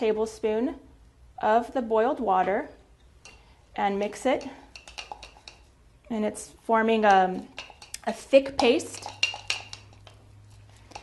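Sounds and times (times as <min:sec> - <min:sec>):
metal spoon clinking glass cup: 0:04.4 - 0:05.7, 0:07.5 - 0:10.2.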